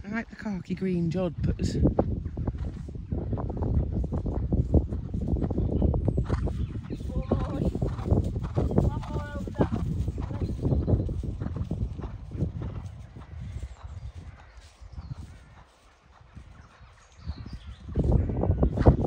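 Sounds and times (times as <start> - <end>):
horse hoofbeats on grass: 2.1 - 19.0.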